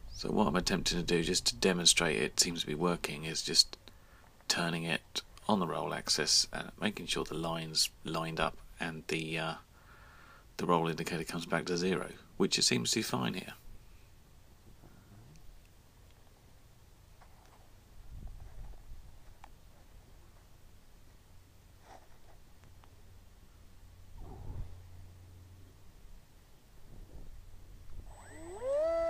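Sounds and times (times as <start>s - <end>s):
faint low hum: 0.0s - 29.0s
electric motor and propeller whine: 28.0s - 29.0s.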